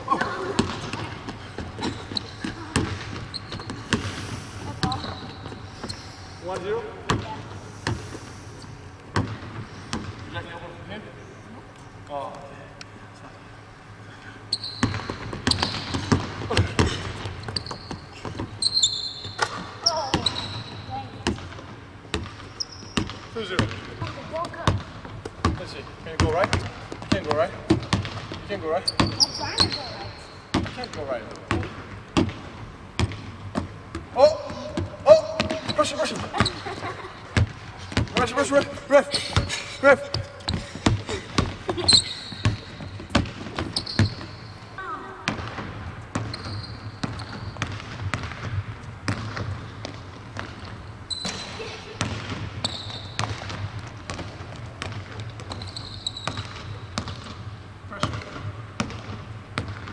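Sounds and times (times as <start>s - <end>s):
sneakers squeaking on floor: 0.0s - 8.1s, 14.4s - 59.9s
basketball bouncing on hardwood: 31.5s - 36.6s, 37.4s - 38.4s, 42.3s - 44.4s, 45.2s - 51.4s, 52.0s - 57.4s, 58.0s - 59.9s.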